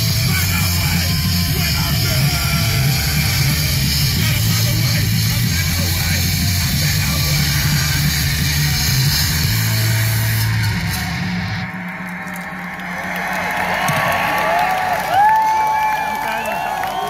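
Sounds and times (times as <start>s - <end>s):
live rock band distorted guitar: 0.0s - 14.0s
crowd shouting and cheering: 0.0s - 17.0s.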